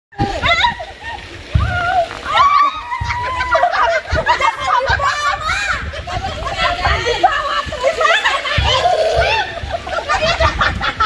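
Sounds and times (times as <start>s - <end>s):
women shouting and squealing: 0.2s - 10.6s.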